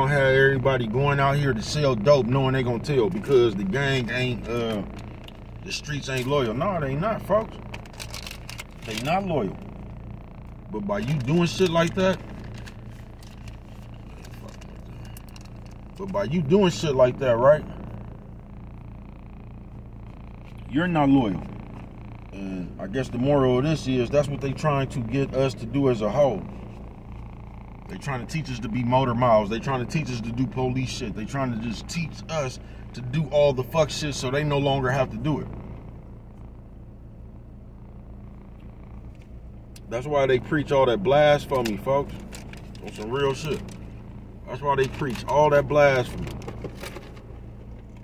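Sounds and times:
vehicle cabin hum: 0.0 - 48.0.

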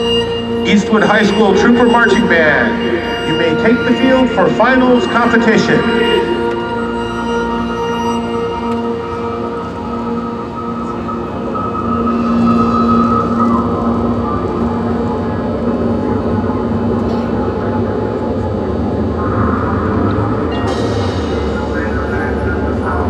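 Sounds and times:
marching band holding chords: 0.0 - 23.0
stadium crowd noise: 0.0 - 23.0.

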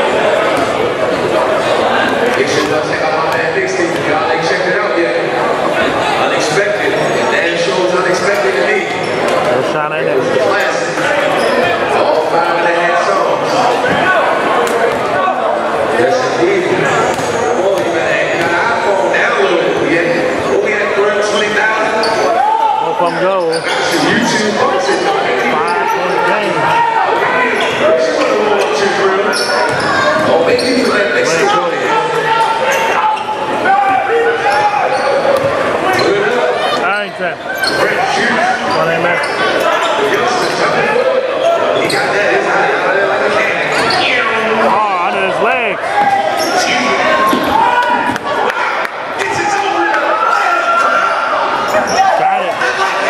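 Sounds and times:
echoing voices: 0.0 - 53.0.

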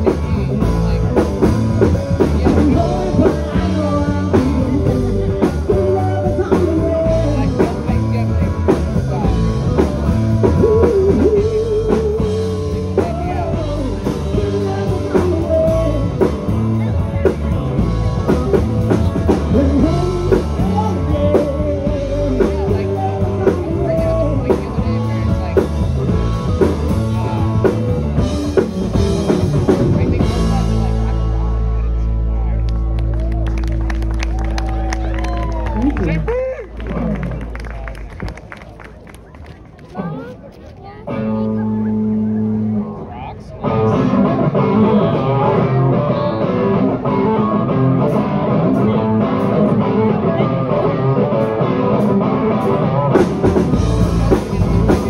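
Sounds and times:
drum kit: 0.0 - 31.8, 51.4 - 55.0
electric guitars: 0.0 - 55.0
person singing: 1.9 - 25.1, 43.7 - 55.0.

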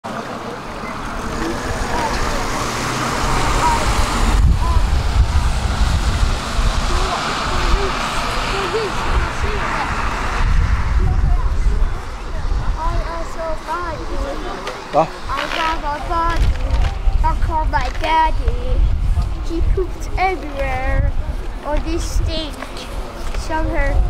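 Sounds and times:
vehicle engine rumble: 0.1 - 24.0
voices of passers-by: 0.1 - 24.0.

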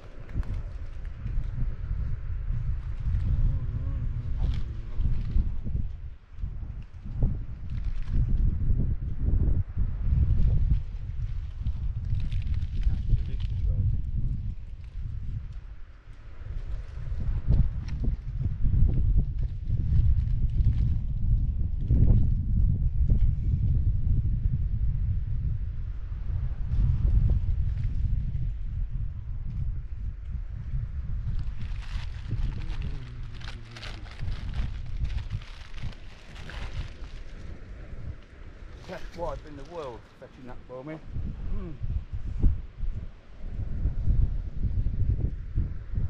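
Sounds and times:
light crackling: 0.0 - 1.6
wind buffeting microphone: 0.0 - 46.0.

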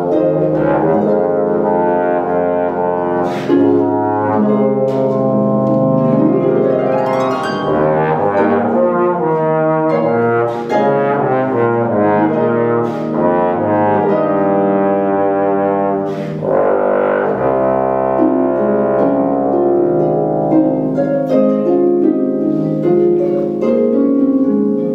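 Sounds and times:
bass trombone melody: 0.0 - 24.9
harp accompaniment: 0.0 - 24.9.

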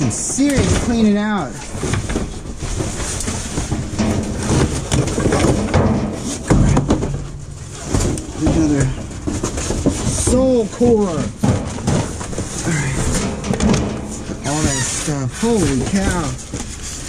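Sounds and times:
rummaging through trash: 0.0 - 17.0.

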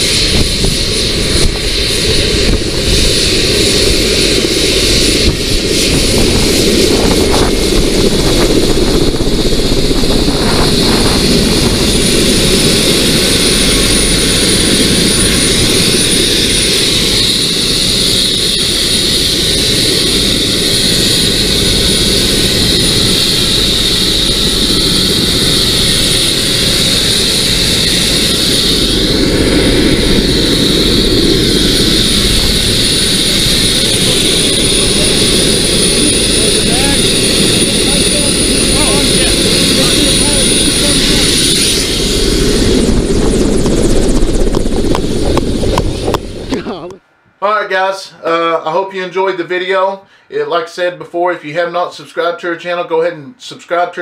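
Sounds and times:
helicopter rotor and engine: 0.0 - 47.0
high whine: 0.0 - 47.0.

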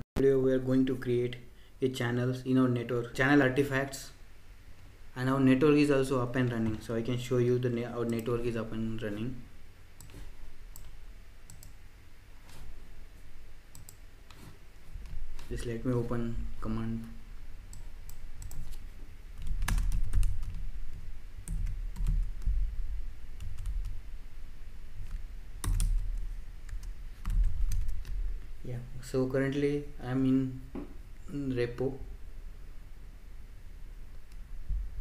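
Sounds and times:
faint low hum: 0.2 - 35.0
computer keyboard typing: 10.0 - 11.8, 13.7 - 14.0, 17.0 - 18.8, 19.4 - 22.5, 23.4 - 24.0, 25.0 - 28.2
computer mouse clicks: 10.0 - 11.8, 13.7 - 14.4.

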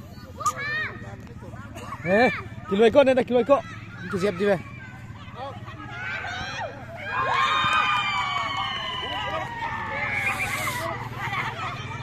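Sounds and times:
voices calling: 0.0 - 12.0
children shouting and cheering: 2.0 - 12.0.

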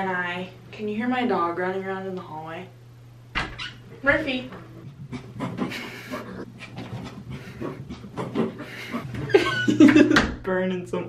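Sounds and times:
low steady hum: 0.0 - 11.0
dog panting: 4.7 - 9.3.

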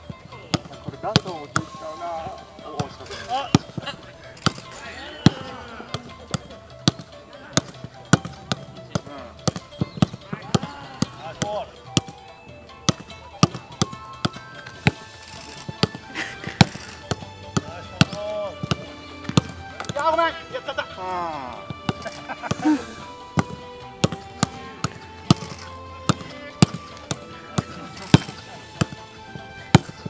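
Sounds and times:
background music: 0.0 - 30.0
foot thudding on football: 12.9 - 20.1, 23.3 - 30.0.

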